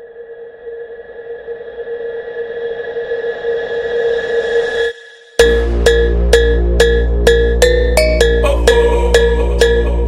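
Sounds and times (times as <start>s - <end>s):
drone of held high tones: 5.4s - 10.0s.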